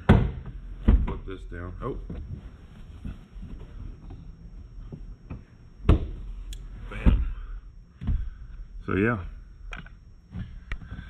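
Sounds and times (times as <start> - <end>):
soft handling noise: 1.8 - 5.6.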